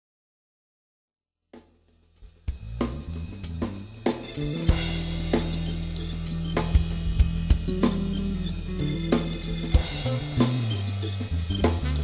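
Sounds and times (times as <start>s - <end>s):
drum kit playing: 1.6s - 12.0s
low notes: 2.5s - 12.0s.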